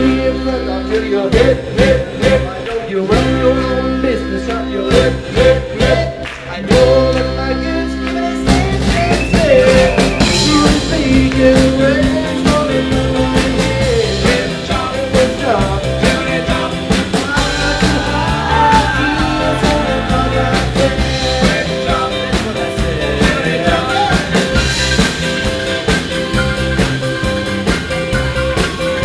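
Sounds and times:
person singing: 0.0s - 25.2s
drum kit beat: 0.0s - 29.0s
electric guitar: 0.0s - 29.0s.

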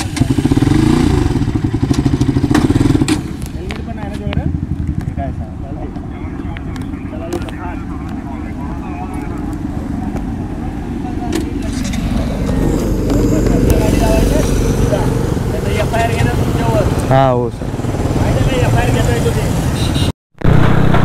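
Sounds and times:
motorcycle and scooter engines: 0.0s - 21.0s
indistinct voices: 5.3s - 19.5s.

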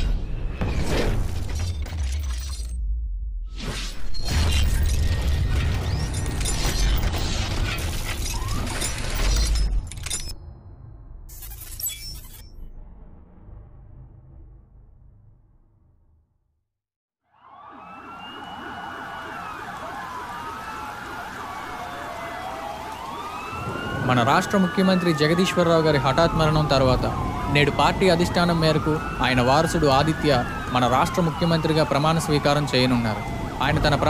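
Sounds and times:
sirens wailing: 7.9s - 9.5s, 17.3s - 34.0s.

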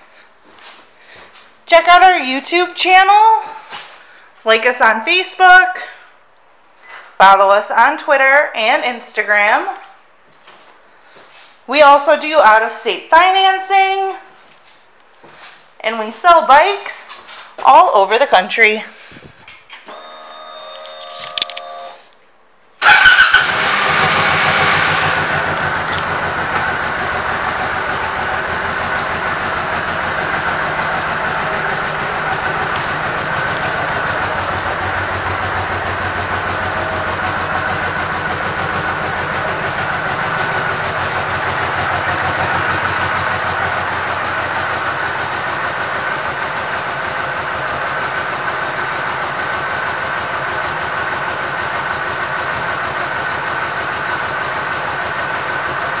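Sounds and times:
motorcycle engine idling: 22.8s - 56.0s.

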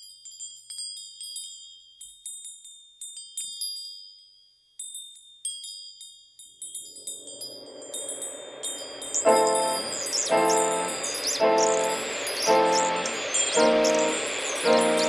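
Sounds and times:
bell-like chime tones: 6.7s - 15.0s
low wash of sound: 7.2s - 15.0s.

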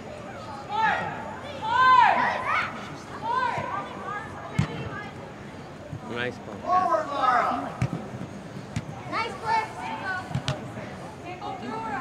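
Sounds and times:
children shouting: 0.7s - 4.3s.

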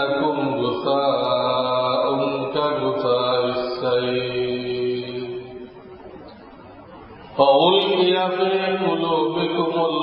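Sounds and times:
man chanting: 0.0s - 5.8s, 7.3s - 10.0s.

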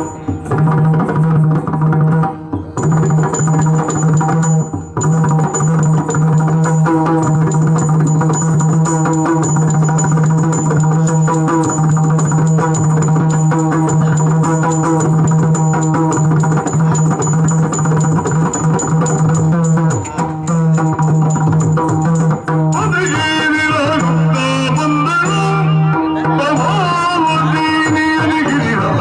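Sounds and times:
drums beating fast rhythm: 0.0s - 29.0s.

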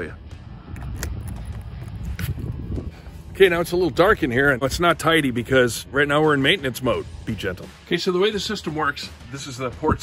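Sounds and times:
low rumbling wind: 0.0s - 6.3s
microphone handling noise: 0.7s - 3.0s.

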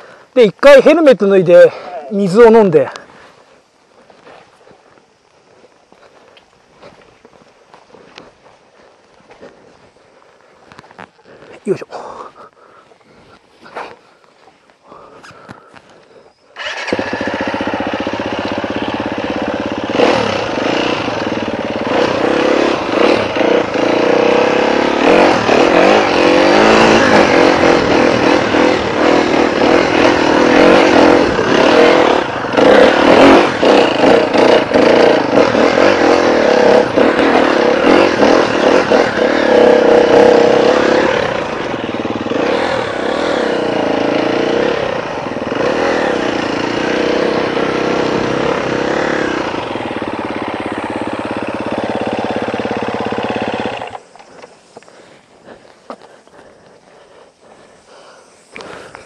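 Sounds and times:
motorcycle engine revving: 16.4s - 59.0s.

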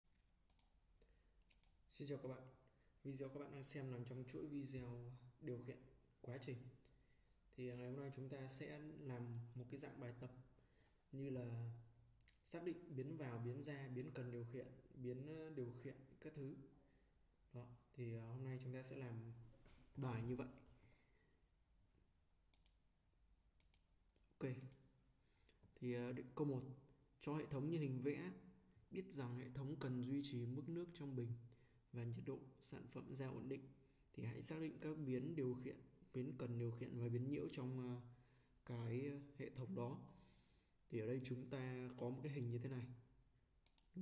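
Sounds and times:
faint computer mouse clicks: 0.5s - 0.8s, 1.4s - 1.8s, 22.5s - 22.8s, 23.6s - 24.8s, 43.6s - 44.0s.

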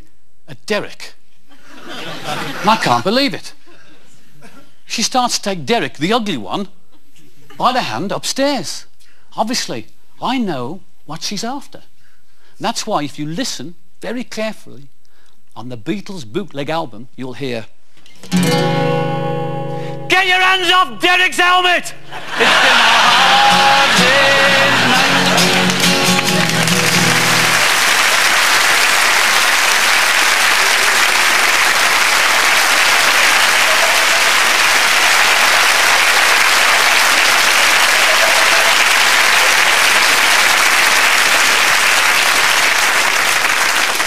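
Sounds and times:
audience laughing: 1.6s - 3.0s, 22.0s - 27.8s
acoustic guitar chords: 18.2s - 20.2s, 22.0s - 27.7s
audience applauding: 22.2s - 44.0s.

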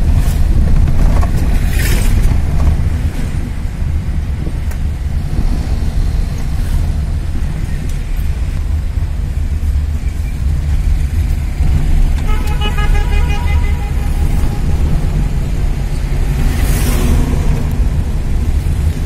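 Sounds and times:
engine and road rumble: 0.0s - 19.0s
car horn short toots: 12.2s - 14.8s.

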